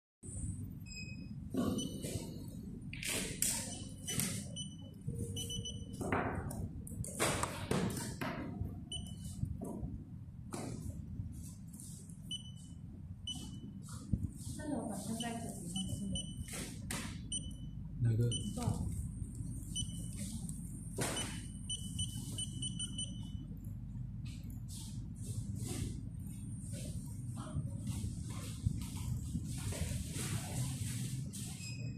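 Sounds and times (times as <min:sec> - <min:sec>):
steady low hum: 0:00.2 - 0:31.9
short high electronic beeps: 0:21.2 - 0:23.4.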